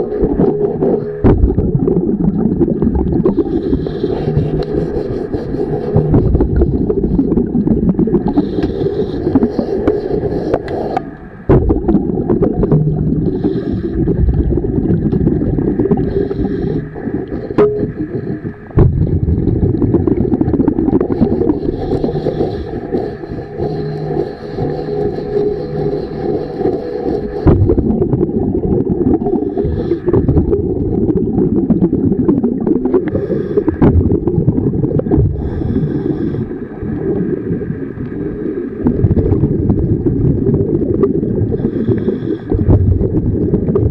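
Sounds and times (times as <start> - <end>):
underwater scraping of boat hull: 0.0 - 31.2.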